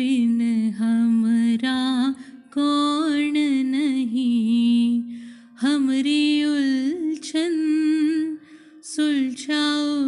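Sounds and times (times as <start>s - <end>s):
woman singing devotional song: 0.0s - 10.0s.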